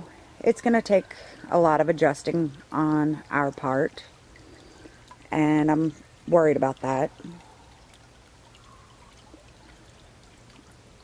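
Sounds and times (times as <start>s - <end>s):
small stream trickling: 0.0s - 11.0s.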